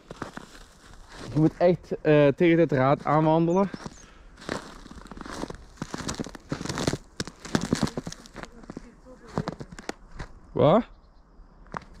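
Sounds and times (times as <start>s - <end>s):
footsteps crunching on snow: 0.0s - 1.8s, 2.6s - 10.4s.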